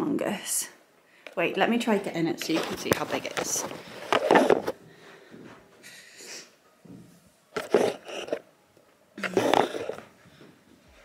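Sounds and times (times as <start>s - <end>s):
faint rustling and movement: 1.3s - 11.0s.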